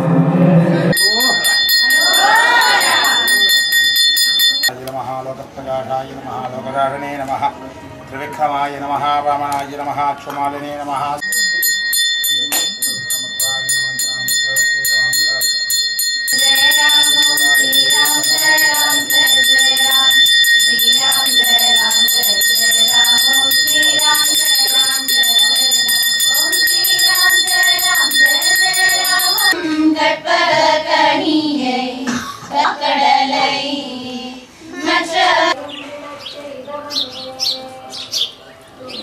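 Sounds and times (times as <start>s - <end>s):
bell rung quickly: 0.9s - 4.7s, 11.2s - 29.6s
voices chanting: 0.9s - 4.7s, 11.2s - 39.0s.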